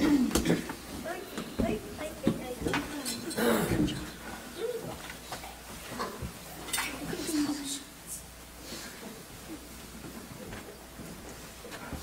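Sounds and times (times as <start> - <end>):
people rustling and shuffling: 0.0 - 12.0.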